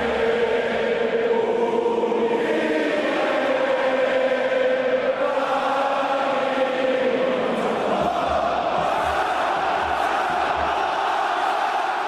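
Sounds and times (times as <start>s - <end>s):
voices chanting in unison: 0.0s - 12.0s.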